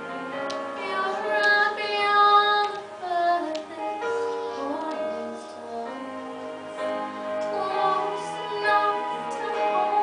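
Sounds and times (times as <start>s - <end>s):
girl singing into microphone: 0.7s - 10.0s.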